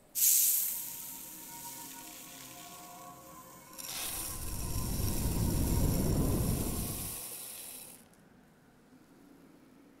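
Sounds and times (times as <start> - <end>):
loud hiss: 0.0 - 3.0, 3.8 - 8.0.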